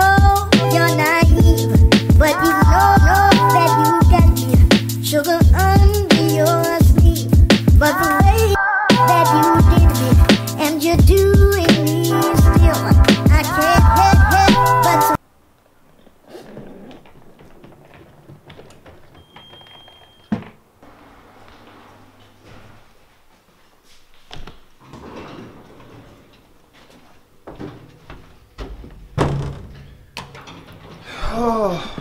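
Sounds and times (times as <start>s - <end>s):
lift doors sliding: 16.9s - 22.9s, 24.8s - 26.9s, 27.5s - 32.0s
knocks: 28.6s - 31.0s.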